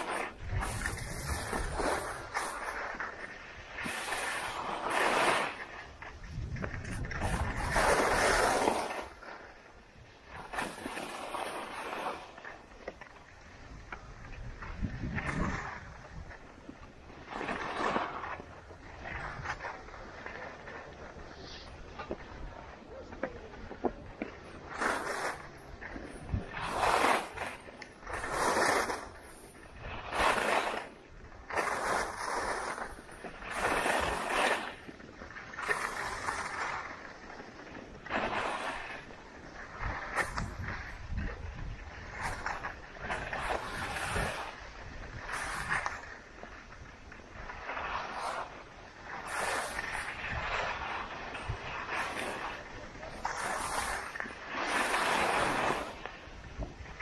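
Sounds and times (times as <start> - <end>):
skis scraping on packed snow: 0.0 - 57.0.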